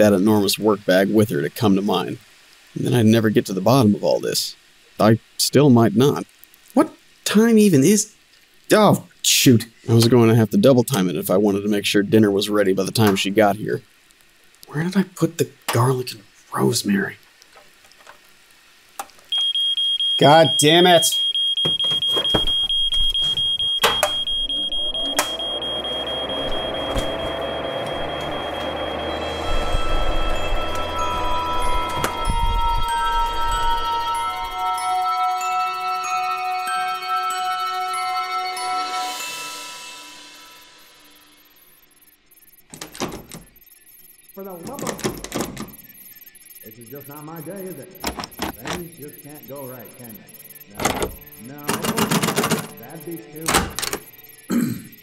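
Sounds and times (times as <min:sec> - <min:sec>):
smoke alarm beeping: 0:19.3 - 0:55.0
frying pan sizzling: 0:23.0 - 0:34.9, 0:37.4 - 0:42.6
chiming mallet percussion music: 0:25.4 - 0:41.5.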